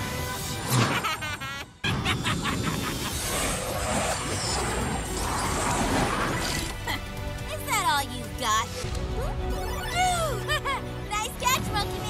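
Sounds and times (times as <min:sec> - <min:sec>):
action score music: 0:00.0 - 0:12.0.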